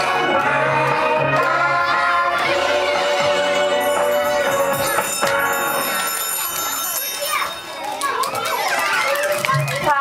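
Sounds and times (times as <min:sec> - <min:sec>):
children talking and calling out: 0:03.9 - 0:10.0.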